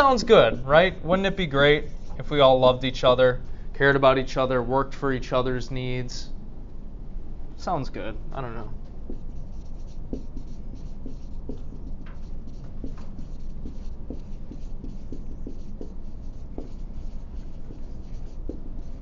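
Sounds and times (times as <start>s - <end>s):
steady low hum: 0.0s - 19.0s
pen writing strokes: 9.1s - 19.0s.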